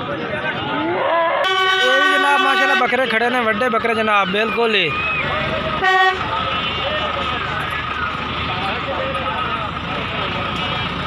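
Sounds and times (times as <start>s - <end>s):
many people talking: 0.0s - 11.0s
vehicle noise: 0.0s - 11.0s.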